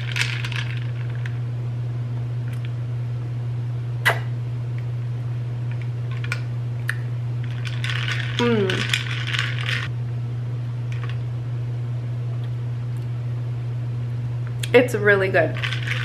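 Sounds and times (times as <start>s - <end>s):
steady low hum: 0.0s - 16.0s
straw rattling against glass: 7.4s - 9.9s, 15.6s - 16.0s.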